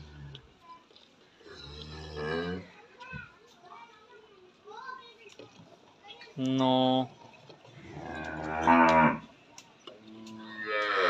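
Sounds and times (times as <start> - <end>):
cattle mooing: 7.9 - 9.3, 10.2 - 11.0.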